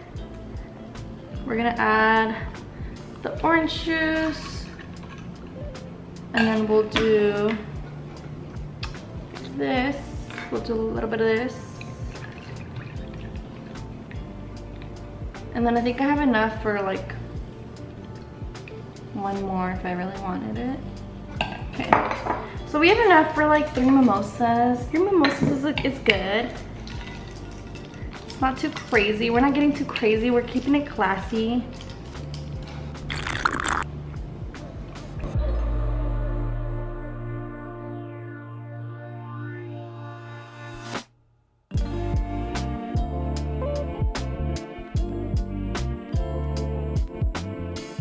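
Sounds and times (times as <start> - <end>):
background music with steady beat: 0.0 - 41.1, 41.7 - 48.0
wine pouring into a glass: 33.0 - 33.8
drink fizzing hiss: 33.1 - 33.8.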